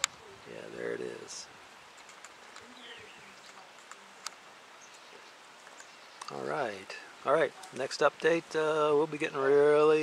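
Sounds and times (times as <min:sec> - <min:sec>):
low background hiss: 0:00.0 - 0:10.0
faint bird chirps: 0:02.4 - 0:07.8.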